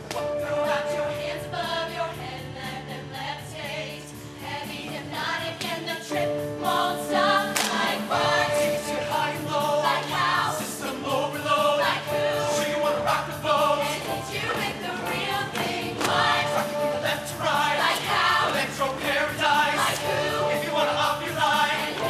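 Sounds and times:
choir singing upbeat pop: 0:00.0 - 0:22.0
instrumental backing with beat: 0:04.1 - 0:22.0.

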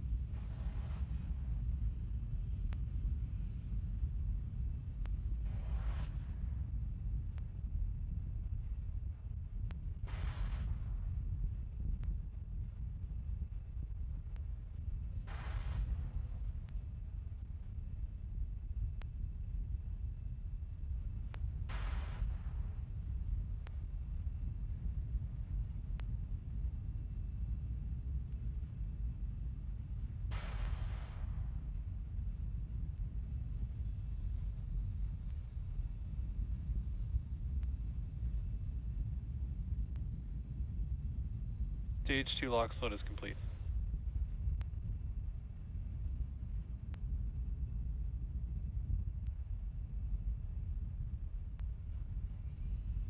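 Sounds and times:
wind rumble on microphone: 0:00.0 - 0:53.0.

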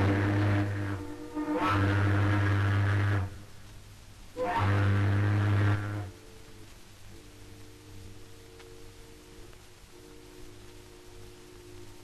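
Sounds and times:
ship's horn blast: 0:00.0 - 0:03.5, 0:04.4 - 0:06.4.

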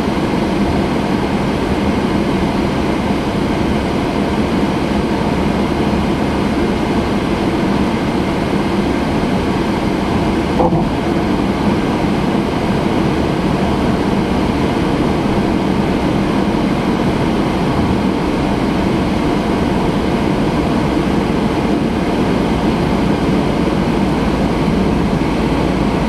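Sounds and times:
car road and engine noise: 0:00.0 - 0:26.0.

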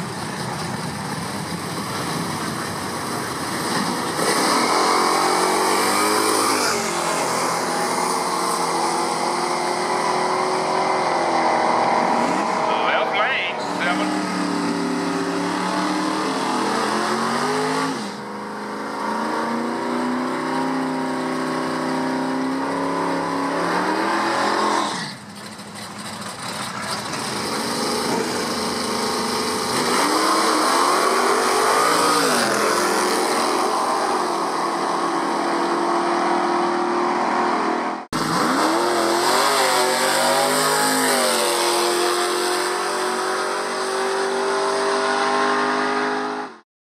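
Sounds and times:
muscle car engines revving: 0:00.0 - 0:46.6
tyre burnout: 0:01.7 - 0:18.3, 0:18.9 - 0:46.4.

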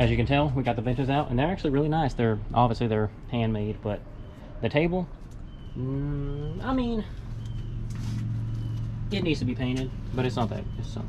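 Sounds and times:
low motor hum: 0:02.3 - 0:11.0
faint rustle: 0:07.1 - 0:09.0.

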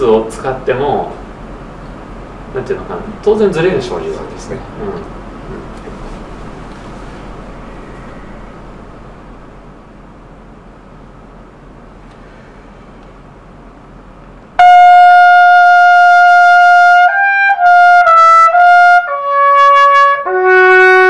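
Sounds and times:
low steady room noise: 0:00.0 - 0:21.0
trumpet playing a loud high note: 0:14.6 - 0:21.0.

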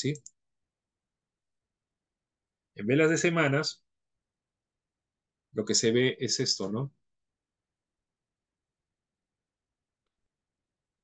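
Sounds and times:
man speaking: 0:02.8 - 0:03.8, 0:05.6 - 0:07.0.

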